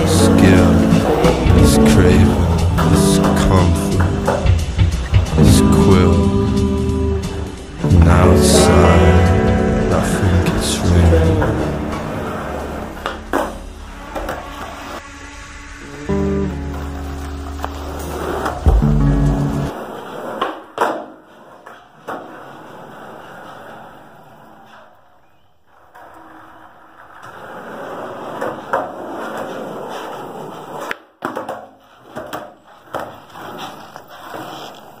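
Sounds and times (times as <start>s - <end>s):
skateboard clacks: 0.0s - 5.9s, 16.7s - 24.9s, 25.7s - 35.0s
guitar song: 0.0s - 13.8s, 15.8s - 19.8s
skateboard wheels rolling on concrete: 0.0s - 35.0s.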